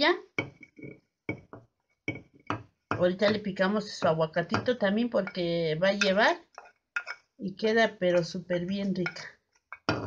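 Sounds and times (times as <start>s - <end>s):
spoon scraping a clay dish: 0.5s - 7.3s, 8.2s - 9.9s.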